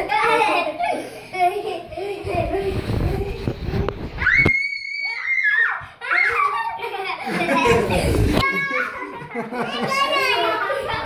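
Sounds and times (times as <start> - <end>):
children squealing and shouting: 4.1 - 11.0
children screaming: 4.2 - 6.9.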